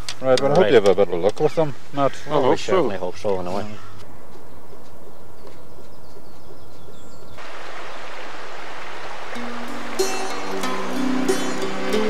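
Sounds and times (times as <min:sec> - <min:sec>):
birds chirping: 0:00.0 - 0:12.0
river rushing over rocks: 0:07.4 - 0:12.0
soft instrumental music: 0:09.3 - 0:12.0.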